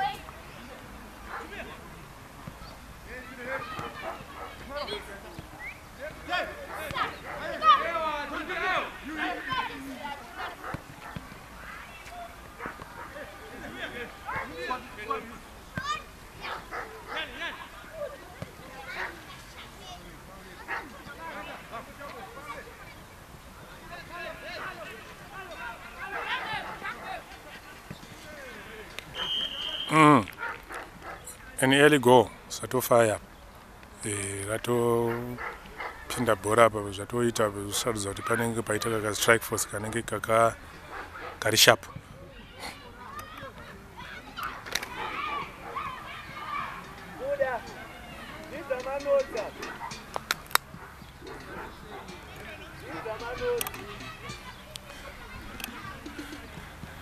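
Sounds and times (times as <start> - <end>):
players shouting and calling: 0.0 - 57.0
people shouting in distance: 42.4 - 50.1.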